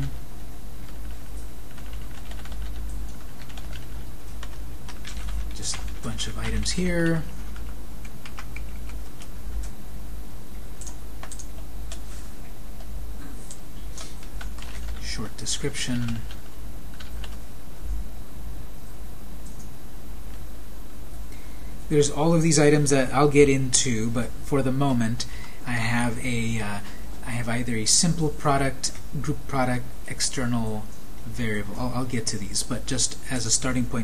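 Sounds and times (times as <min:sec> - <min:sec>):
steady low hum: 0:00.0 - 0:34.0
typing on computer keyboard: 0:00.8 - 0:09.7, 0:10.8 - 0:12.0, 0:13.5 - 0:15.0, 0:15.9 - 0:17.4.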